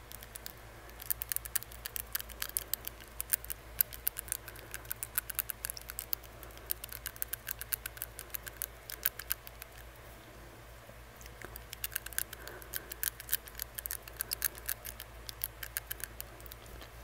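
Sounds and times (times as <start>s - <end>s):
tongue ring clicking against teeth: 0.0s - 9.9s, 11.2s - 16.7s.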